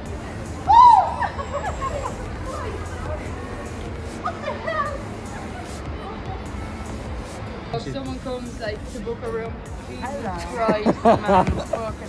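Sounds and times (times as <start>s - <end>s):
passers-by exclaiming and chattering: 0.0s - 12.0s
street hubbub: 0.0s - 12.0s.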